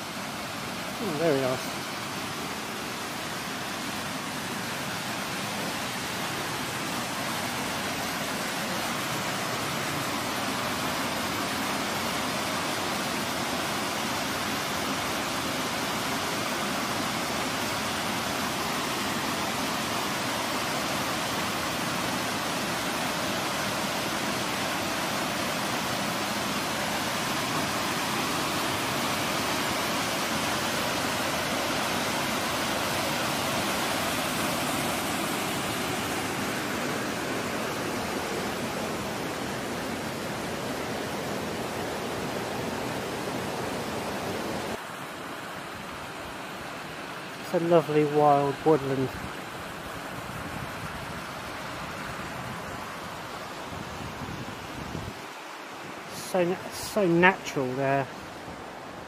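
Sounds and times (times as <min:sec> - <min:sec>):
waterfall rushing into pool: 0:00.0 - 0:59.0.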